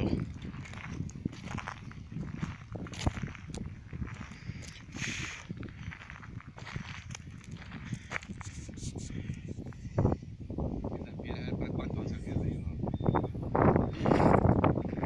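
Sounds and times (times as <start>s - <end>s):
footsteps on dry grass: 0.0s - 10.1s.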